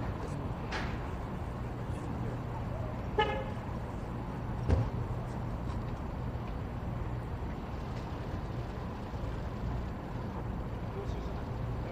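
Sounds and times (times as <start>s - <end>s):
idling vehicles hum: 0.0s - 11.9s
street noise: 0.0s - 11.9s.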